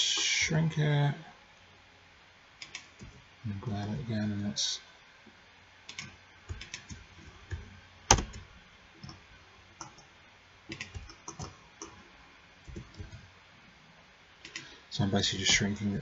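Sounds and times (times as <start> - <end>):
keyboard and mouse clicking: 2.6 - 3.2, 5.9 - 8.4, 9.8 - 10.1, 10.7 - 12.0, 14.4 - 14.7
sharp knock: 8.1 - 8.4.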